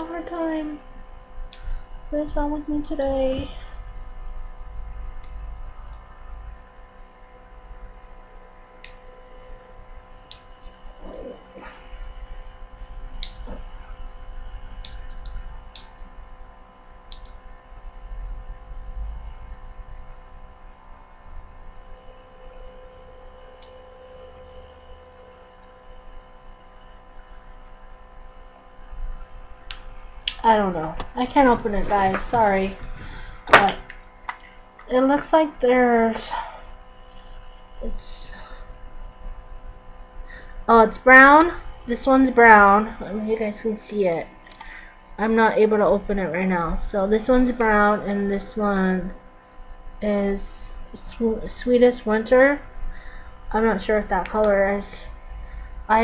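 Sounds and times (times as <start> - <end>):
electrical hum: 0.0 - 56.0.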